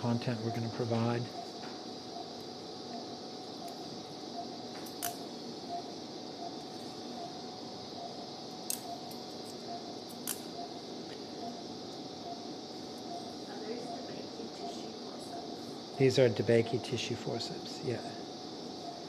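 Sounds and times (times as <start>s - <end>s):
patient monitor beeping: 0.0s - 19.0s
steady hum and hiss: 0.0s - 19.0s.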